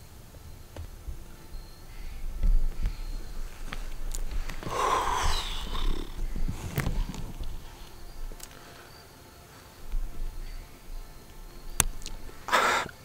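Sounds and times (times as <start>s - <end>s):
person exhaling: 4.6s - 7.8s, 12.5s - 13.0s.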